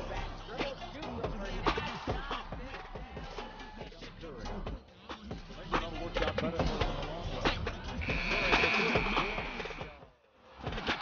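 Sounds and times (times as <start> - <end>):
arena crowd noise: 5.6 - 11.0
steady buzzer: 8.0 - 10.0.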